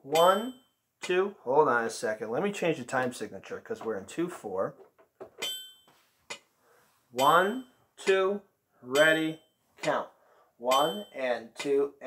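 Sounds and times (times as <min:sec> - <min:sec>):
metronome ringing tone: 0:00.0 - 0:01.2, 0:05.4 - 0:06.0, 0:07.2 - 0:08.3, 0:08.9 - 0:12.0
metronome clicks: 0:08.9 - 0:10.0, 0:10.7 - 0:11.8.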